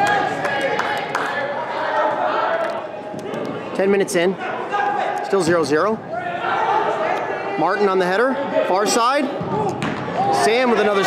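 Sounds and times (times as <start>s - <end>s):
voices calling out in a hall: 0.0s - 11.0s
soccer ball thuds: 9.4s - 10.2s.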